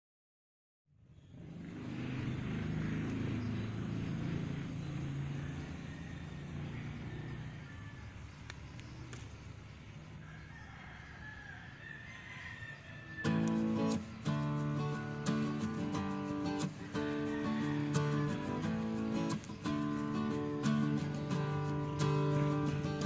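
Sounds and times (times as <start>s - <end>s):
rooster crowing faintly: 5.2s - 8.5s, 10.1s - 14.0s, 16.6s - 18.9s
acoustic guitar music: 13.2s - 23.0s.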